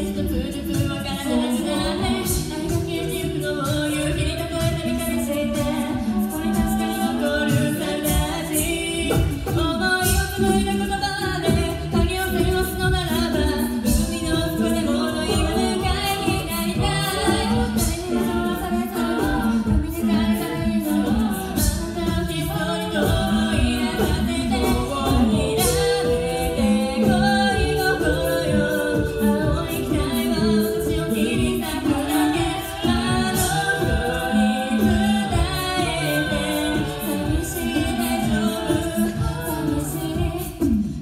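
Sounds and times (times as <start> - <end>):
women singing in close harmony: 0.0 - 41.0.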